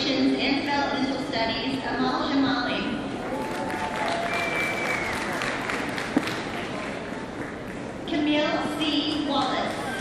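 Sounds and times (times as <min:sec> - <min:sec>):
audience applauding: 0:03.3 - 0:07.9.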